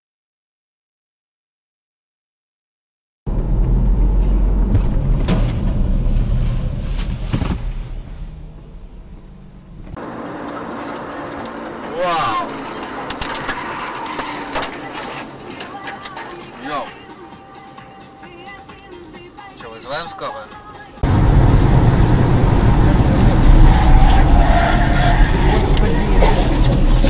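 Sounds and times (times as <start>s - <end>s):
loud low rumble with knocks: 3.3s - 10.0s, 21.0s - 25.4s
vehicle and road noise: 3.3s - 27.0s
voices: 10.5s - 17.5s, 22.0s - 27.0s.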